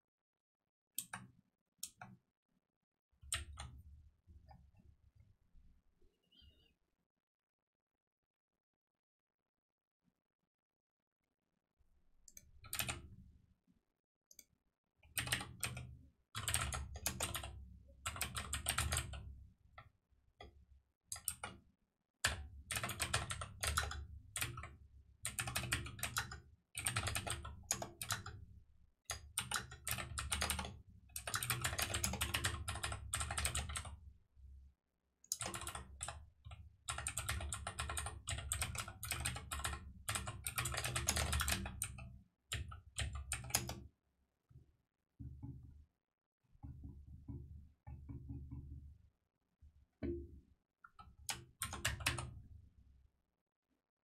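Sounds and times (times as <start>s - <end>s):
fast typing on a keyboard: 12.6s - 13.1s, 15.2s - 19.3s, 22.2s - 28.4s, 29.1s - 33.9s, 35.3s - 36.2s, 36.8s - 43.8s, 51.3s - 52.3s.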